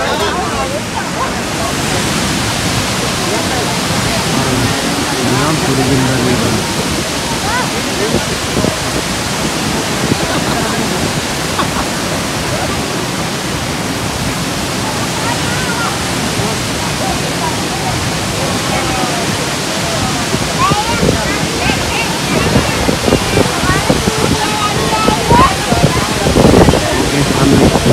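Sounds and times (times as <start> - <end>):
faint voices: 0.0 - 27.9
waterfall roaring: 0.0 - 27.9.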